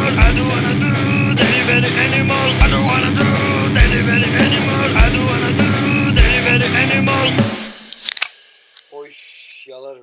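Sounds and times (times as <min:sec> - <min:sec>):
distorted rock song with guitar: 0:00.0 - 0:08.4.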